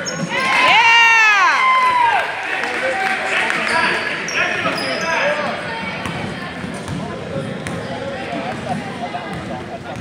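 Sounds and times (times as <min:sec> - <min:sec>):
sneaker squeaks: 0:00.0 - 0:00.5, 0:03.6 - 0:08.1
chatter of spectators: 0:00.0 - 0:10.0
basketball bouncing on court: 0:06.0 - 0:10.0.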